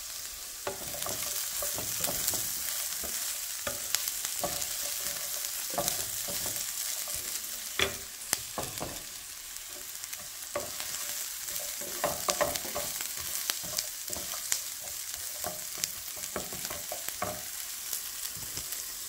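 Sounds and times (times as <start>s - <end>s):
vegetables sizzling in oil: 0.0s - 19.0s
wooden spatula scraping pan: 0.6s - 17.6s.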